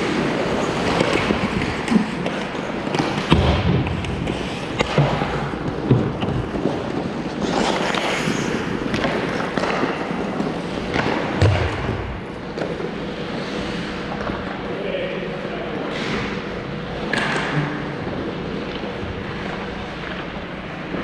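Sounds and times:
skates scraping on ice: 0.0s - 11.4s, 12.4s - 14.1s
hockey sticks and puck clacking: 0.0s - 14.8s.

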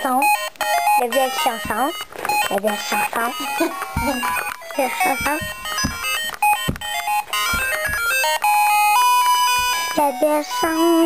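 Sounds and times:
electronic beeping melody: 0.0s - 11.0s
low thumps: 1.4s - 9.8s.

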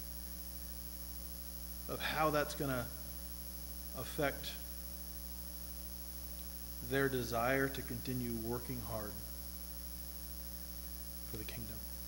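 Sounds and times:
electrical mains hum: 0.0s - 12.0s
man speaking: 1.9s - 2.9s, 4.0s - 4.6s, 6.8s - 9.2s, 11.3s - 11.8s.

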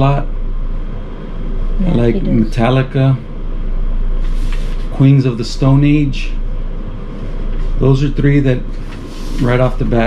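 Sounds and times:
man speaking: 0.0s - 0.3s, 1.9s - 3.3s, 4.9s - 6.4s, 7.8s - 8.7s, 9.3s - 10.0s
low room hum: 0.0s - 10.0s.

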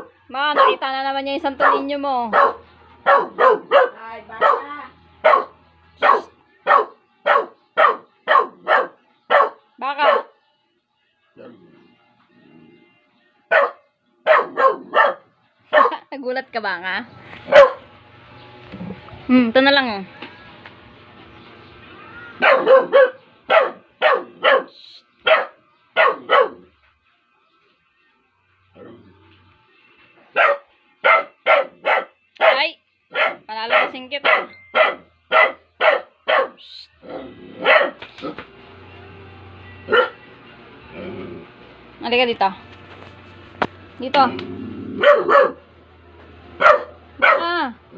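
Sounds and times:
small dog barking: 0.0s - 0.8s, 1.6s - 10.4s, 13.5s - 16.0s, 17.5s - 17.9s, 22.4s - 26.7s, 30.3s - 38.4s, 39.9s - 40.2s, 45.0s - 45.7s, 46.6s - 47.6s.

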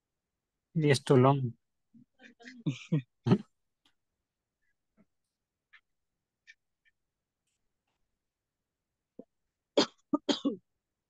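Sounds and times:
person coughing: 2.7s - 3.5s, 9.8s - 10.7s.

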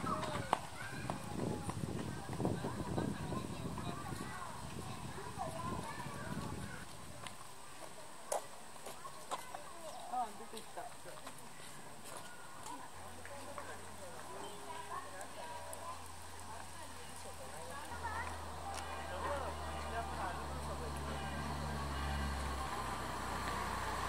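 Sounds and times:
low chatter of voices: 0.0s - 24.0s.

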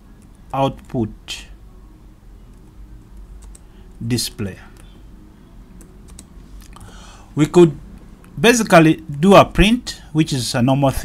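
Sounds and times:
faint low hum: 0.0s - 11.0s
keyboard typing: 2.5s - 3.7s, 5.8s - 6.9s.

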